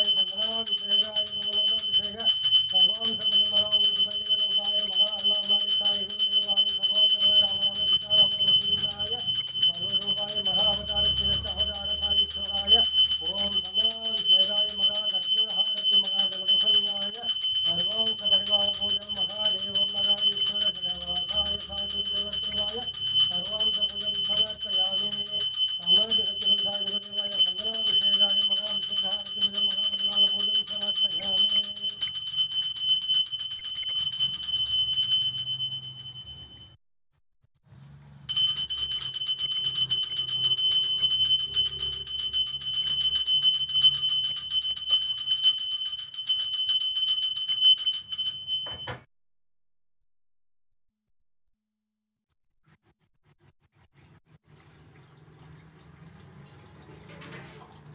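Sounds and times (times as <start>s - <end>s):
person's voice: 0.0s - 31.6s
small hand bell ringing rapidly: 0.0s - 36.8s, 38.3s - 49.0s.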